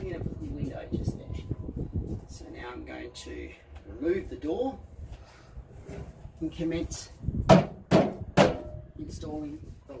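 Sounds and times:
sharp knocks on metal door: 7.4 - 8.8.

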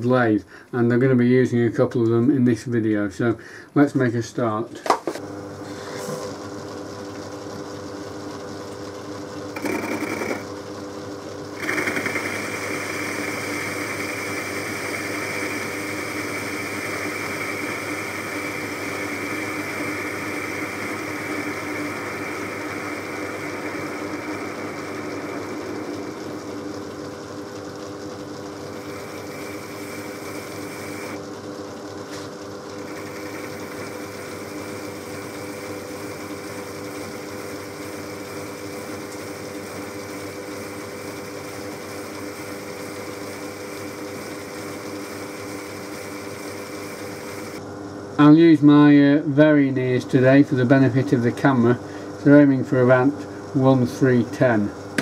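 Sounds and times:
lathe motor humming: 5.2 - 48.4
hiss of metal cutting: 11.6 - 25.4.

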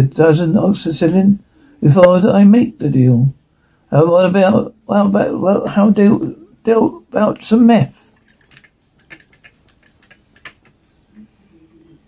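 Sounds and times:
light clicks and taps: 8.3 - 10.8.

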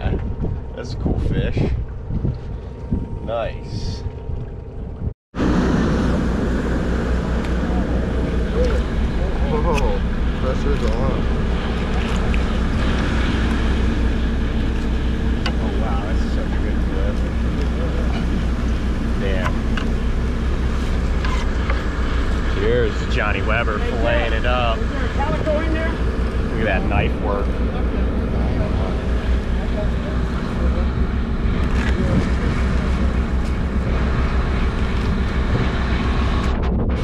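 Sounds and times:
boat engine drone: 0.0 - 37.0.

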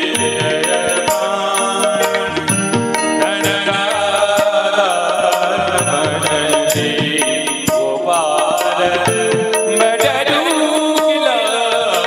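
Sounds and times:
harmonium tones: 0.0 - 12.0
man singing devotional song: 0.0 - 12.0
percussion strokes: 0.0 - 12.0.

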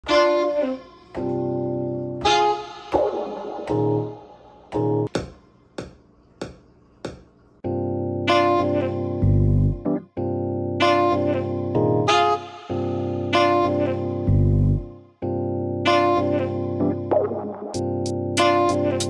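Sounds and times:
keyboard chord stabs: 1.2 - 5.1, 7.6 - 19.0.

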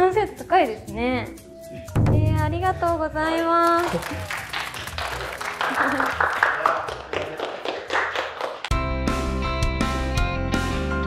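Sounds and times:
background music: 0.0 - 11.0
people clapping: 3.6 - 8.8.

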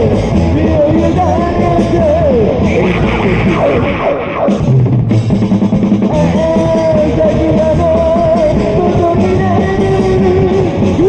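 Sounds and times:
drum break: 0.0 - 11.0
rock band instrumental: 0.0 - 11.0.

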